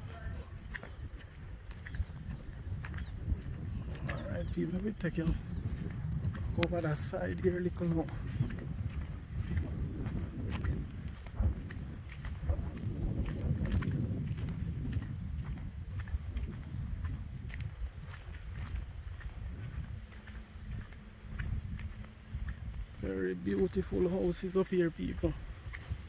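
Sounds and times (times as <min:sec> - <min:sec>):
footsteps on paved road: 0:00.0 - 0:26.0
wind buffeting microphone: 0:00.0 - 0:26.0.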